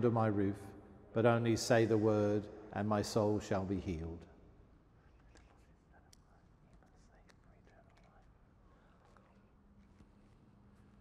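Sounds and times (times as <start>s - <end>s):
man whispering faintly: 4.8s - 10.0s.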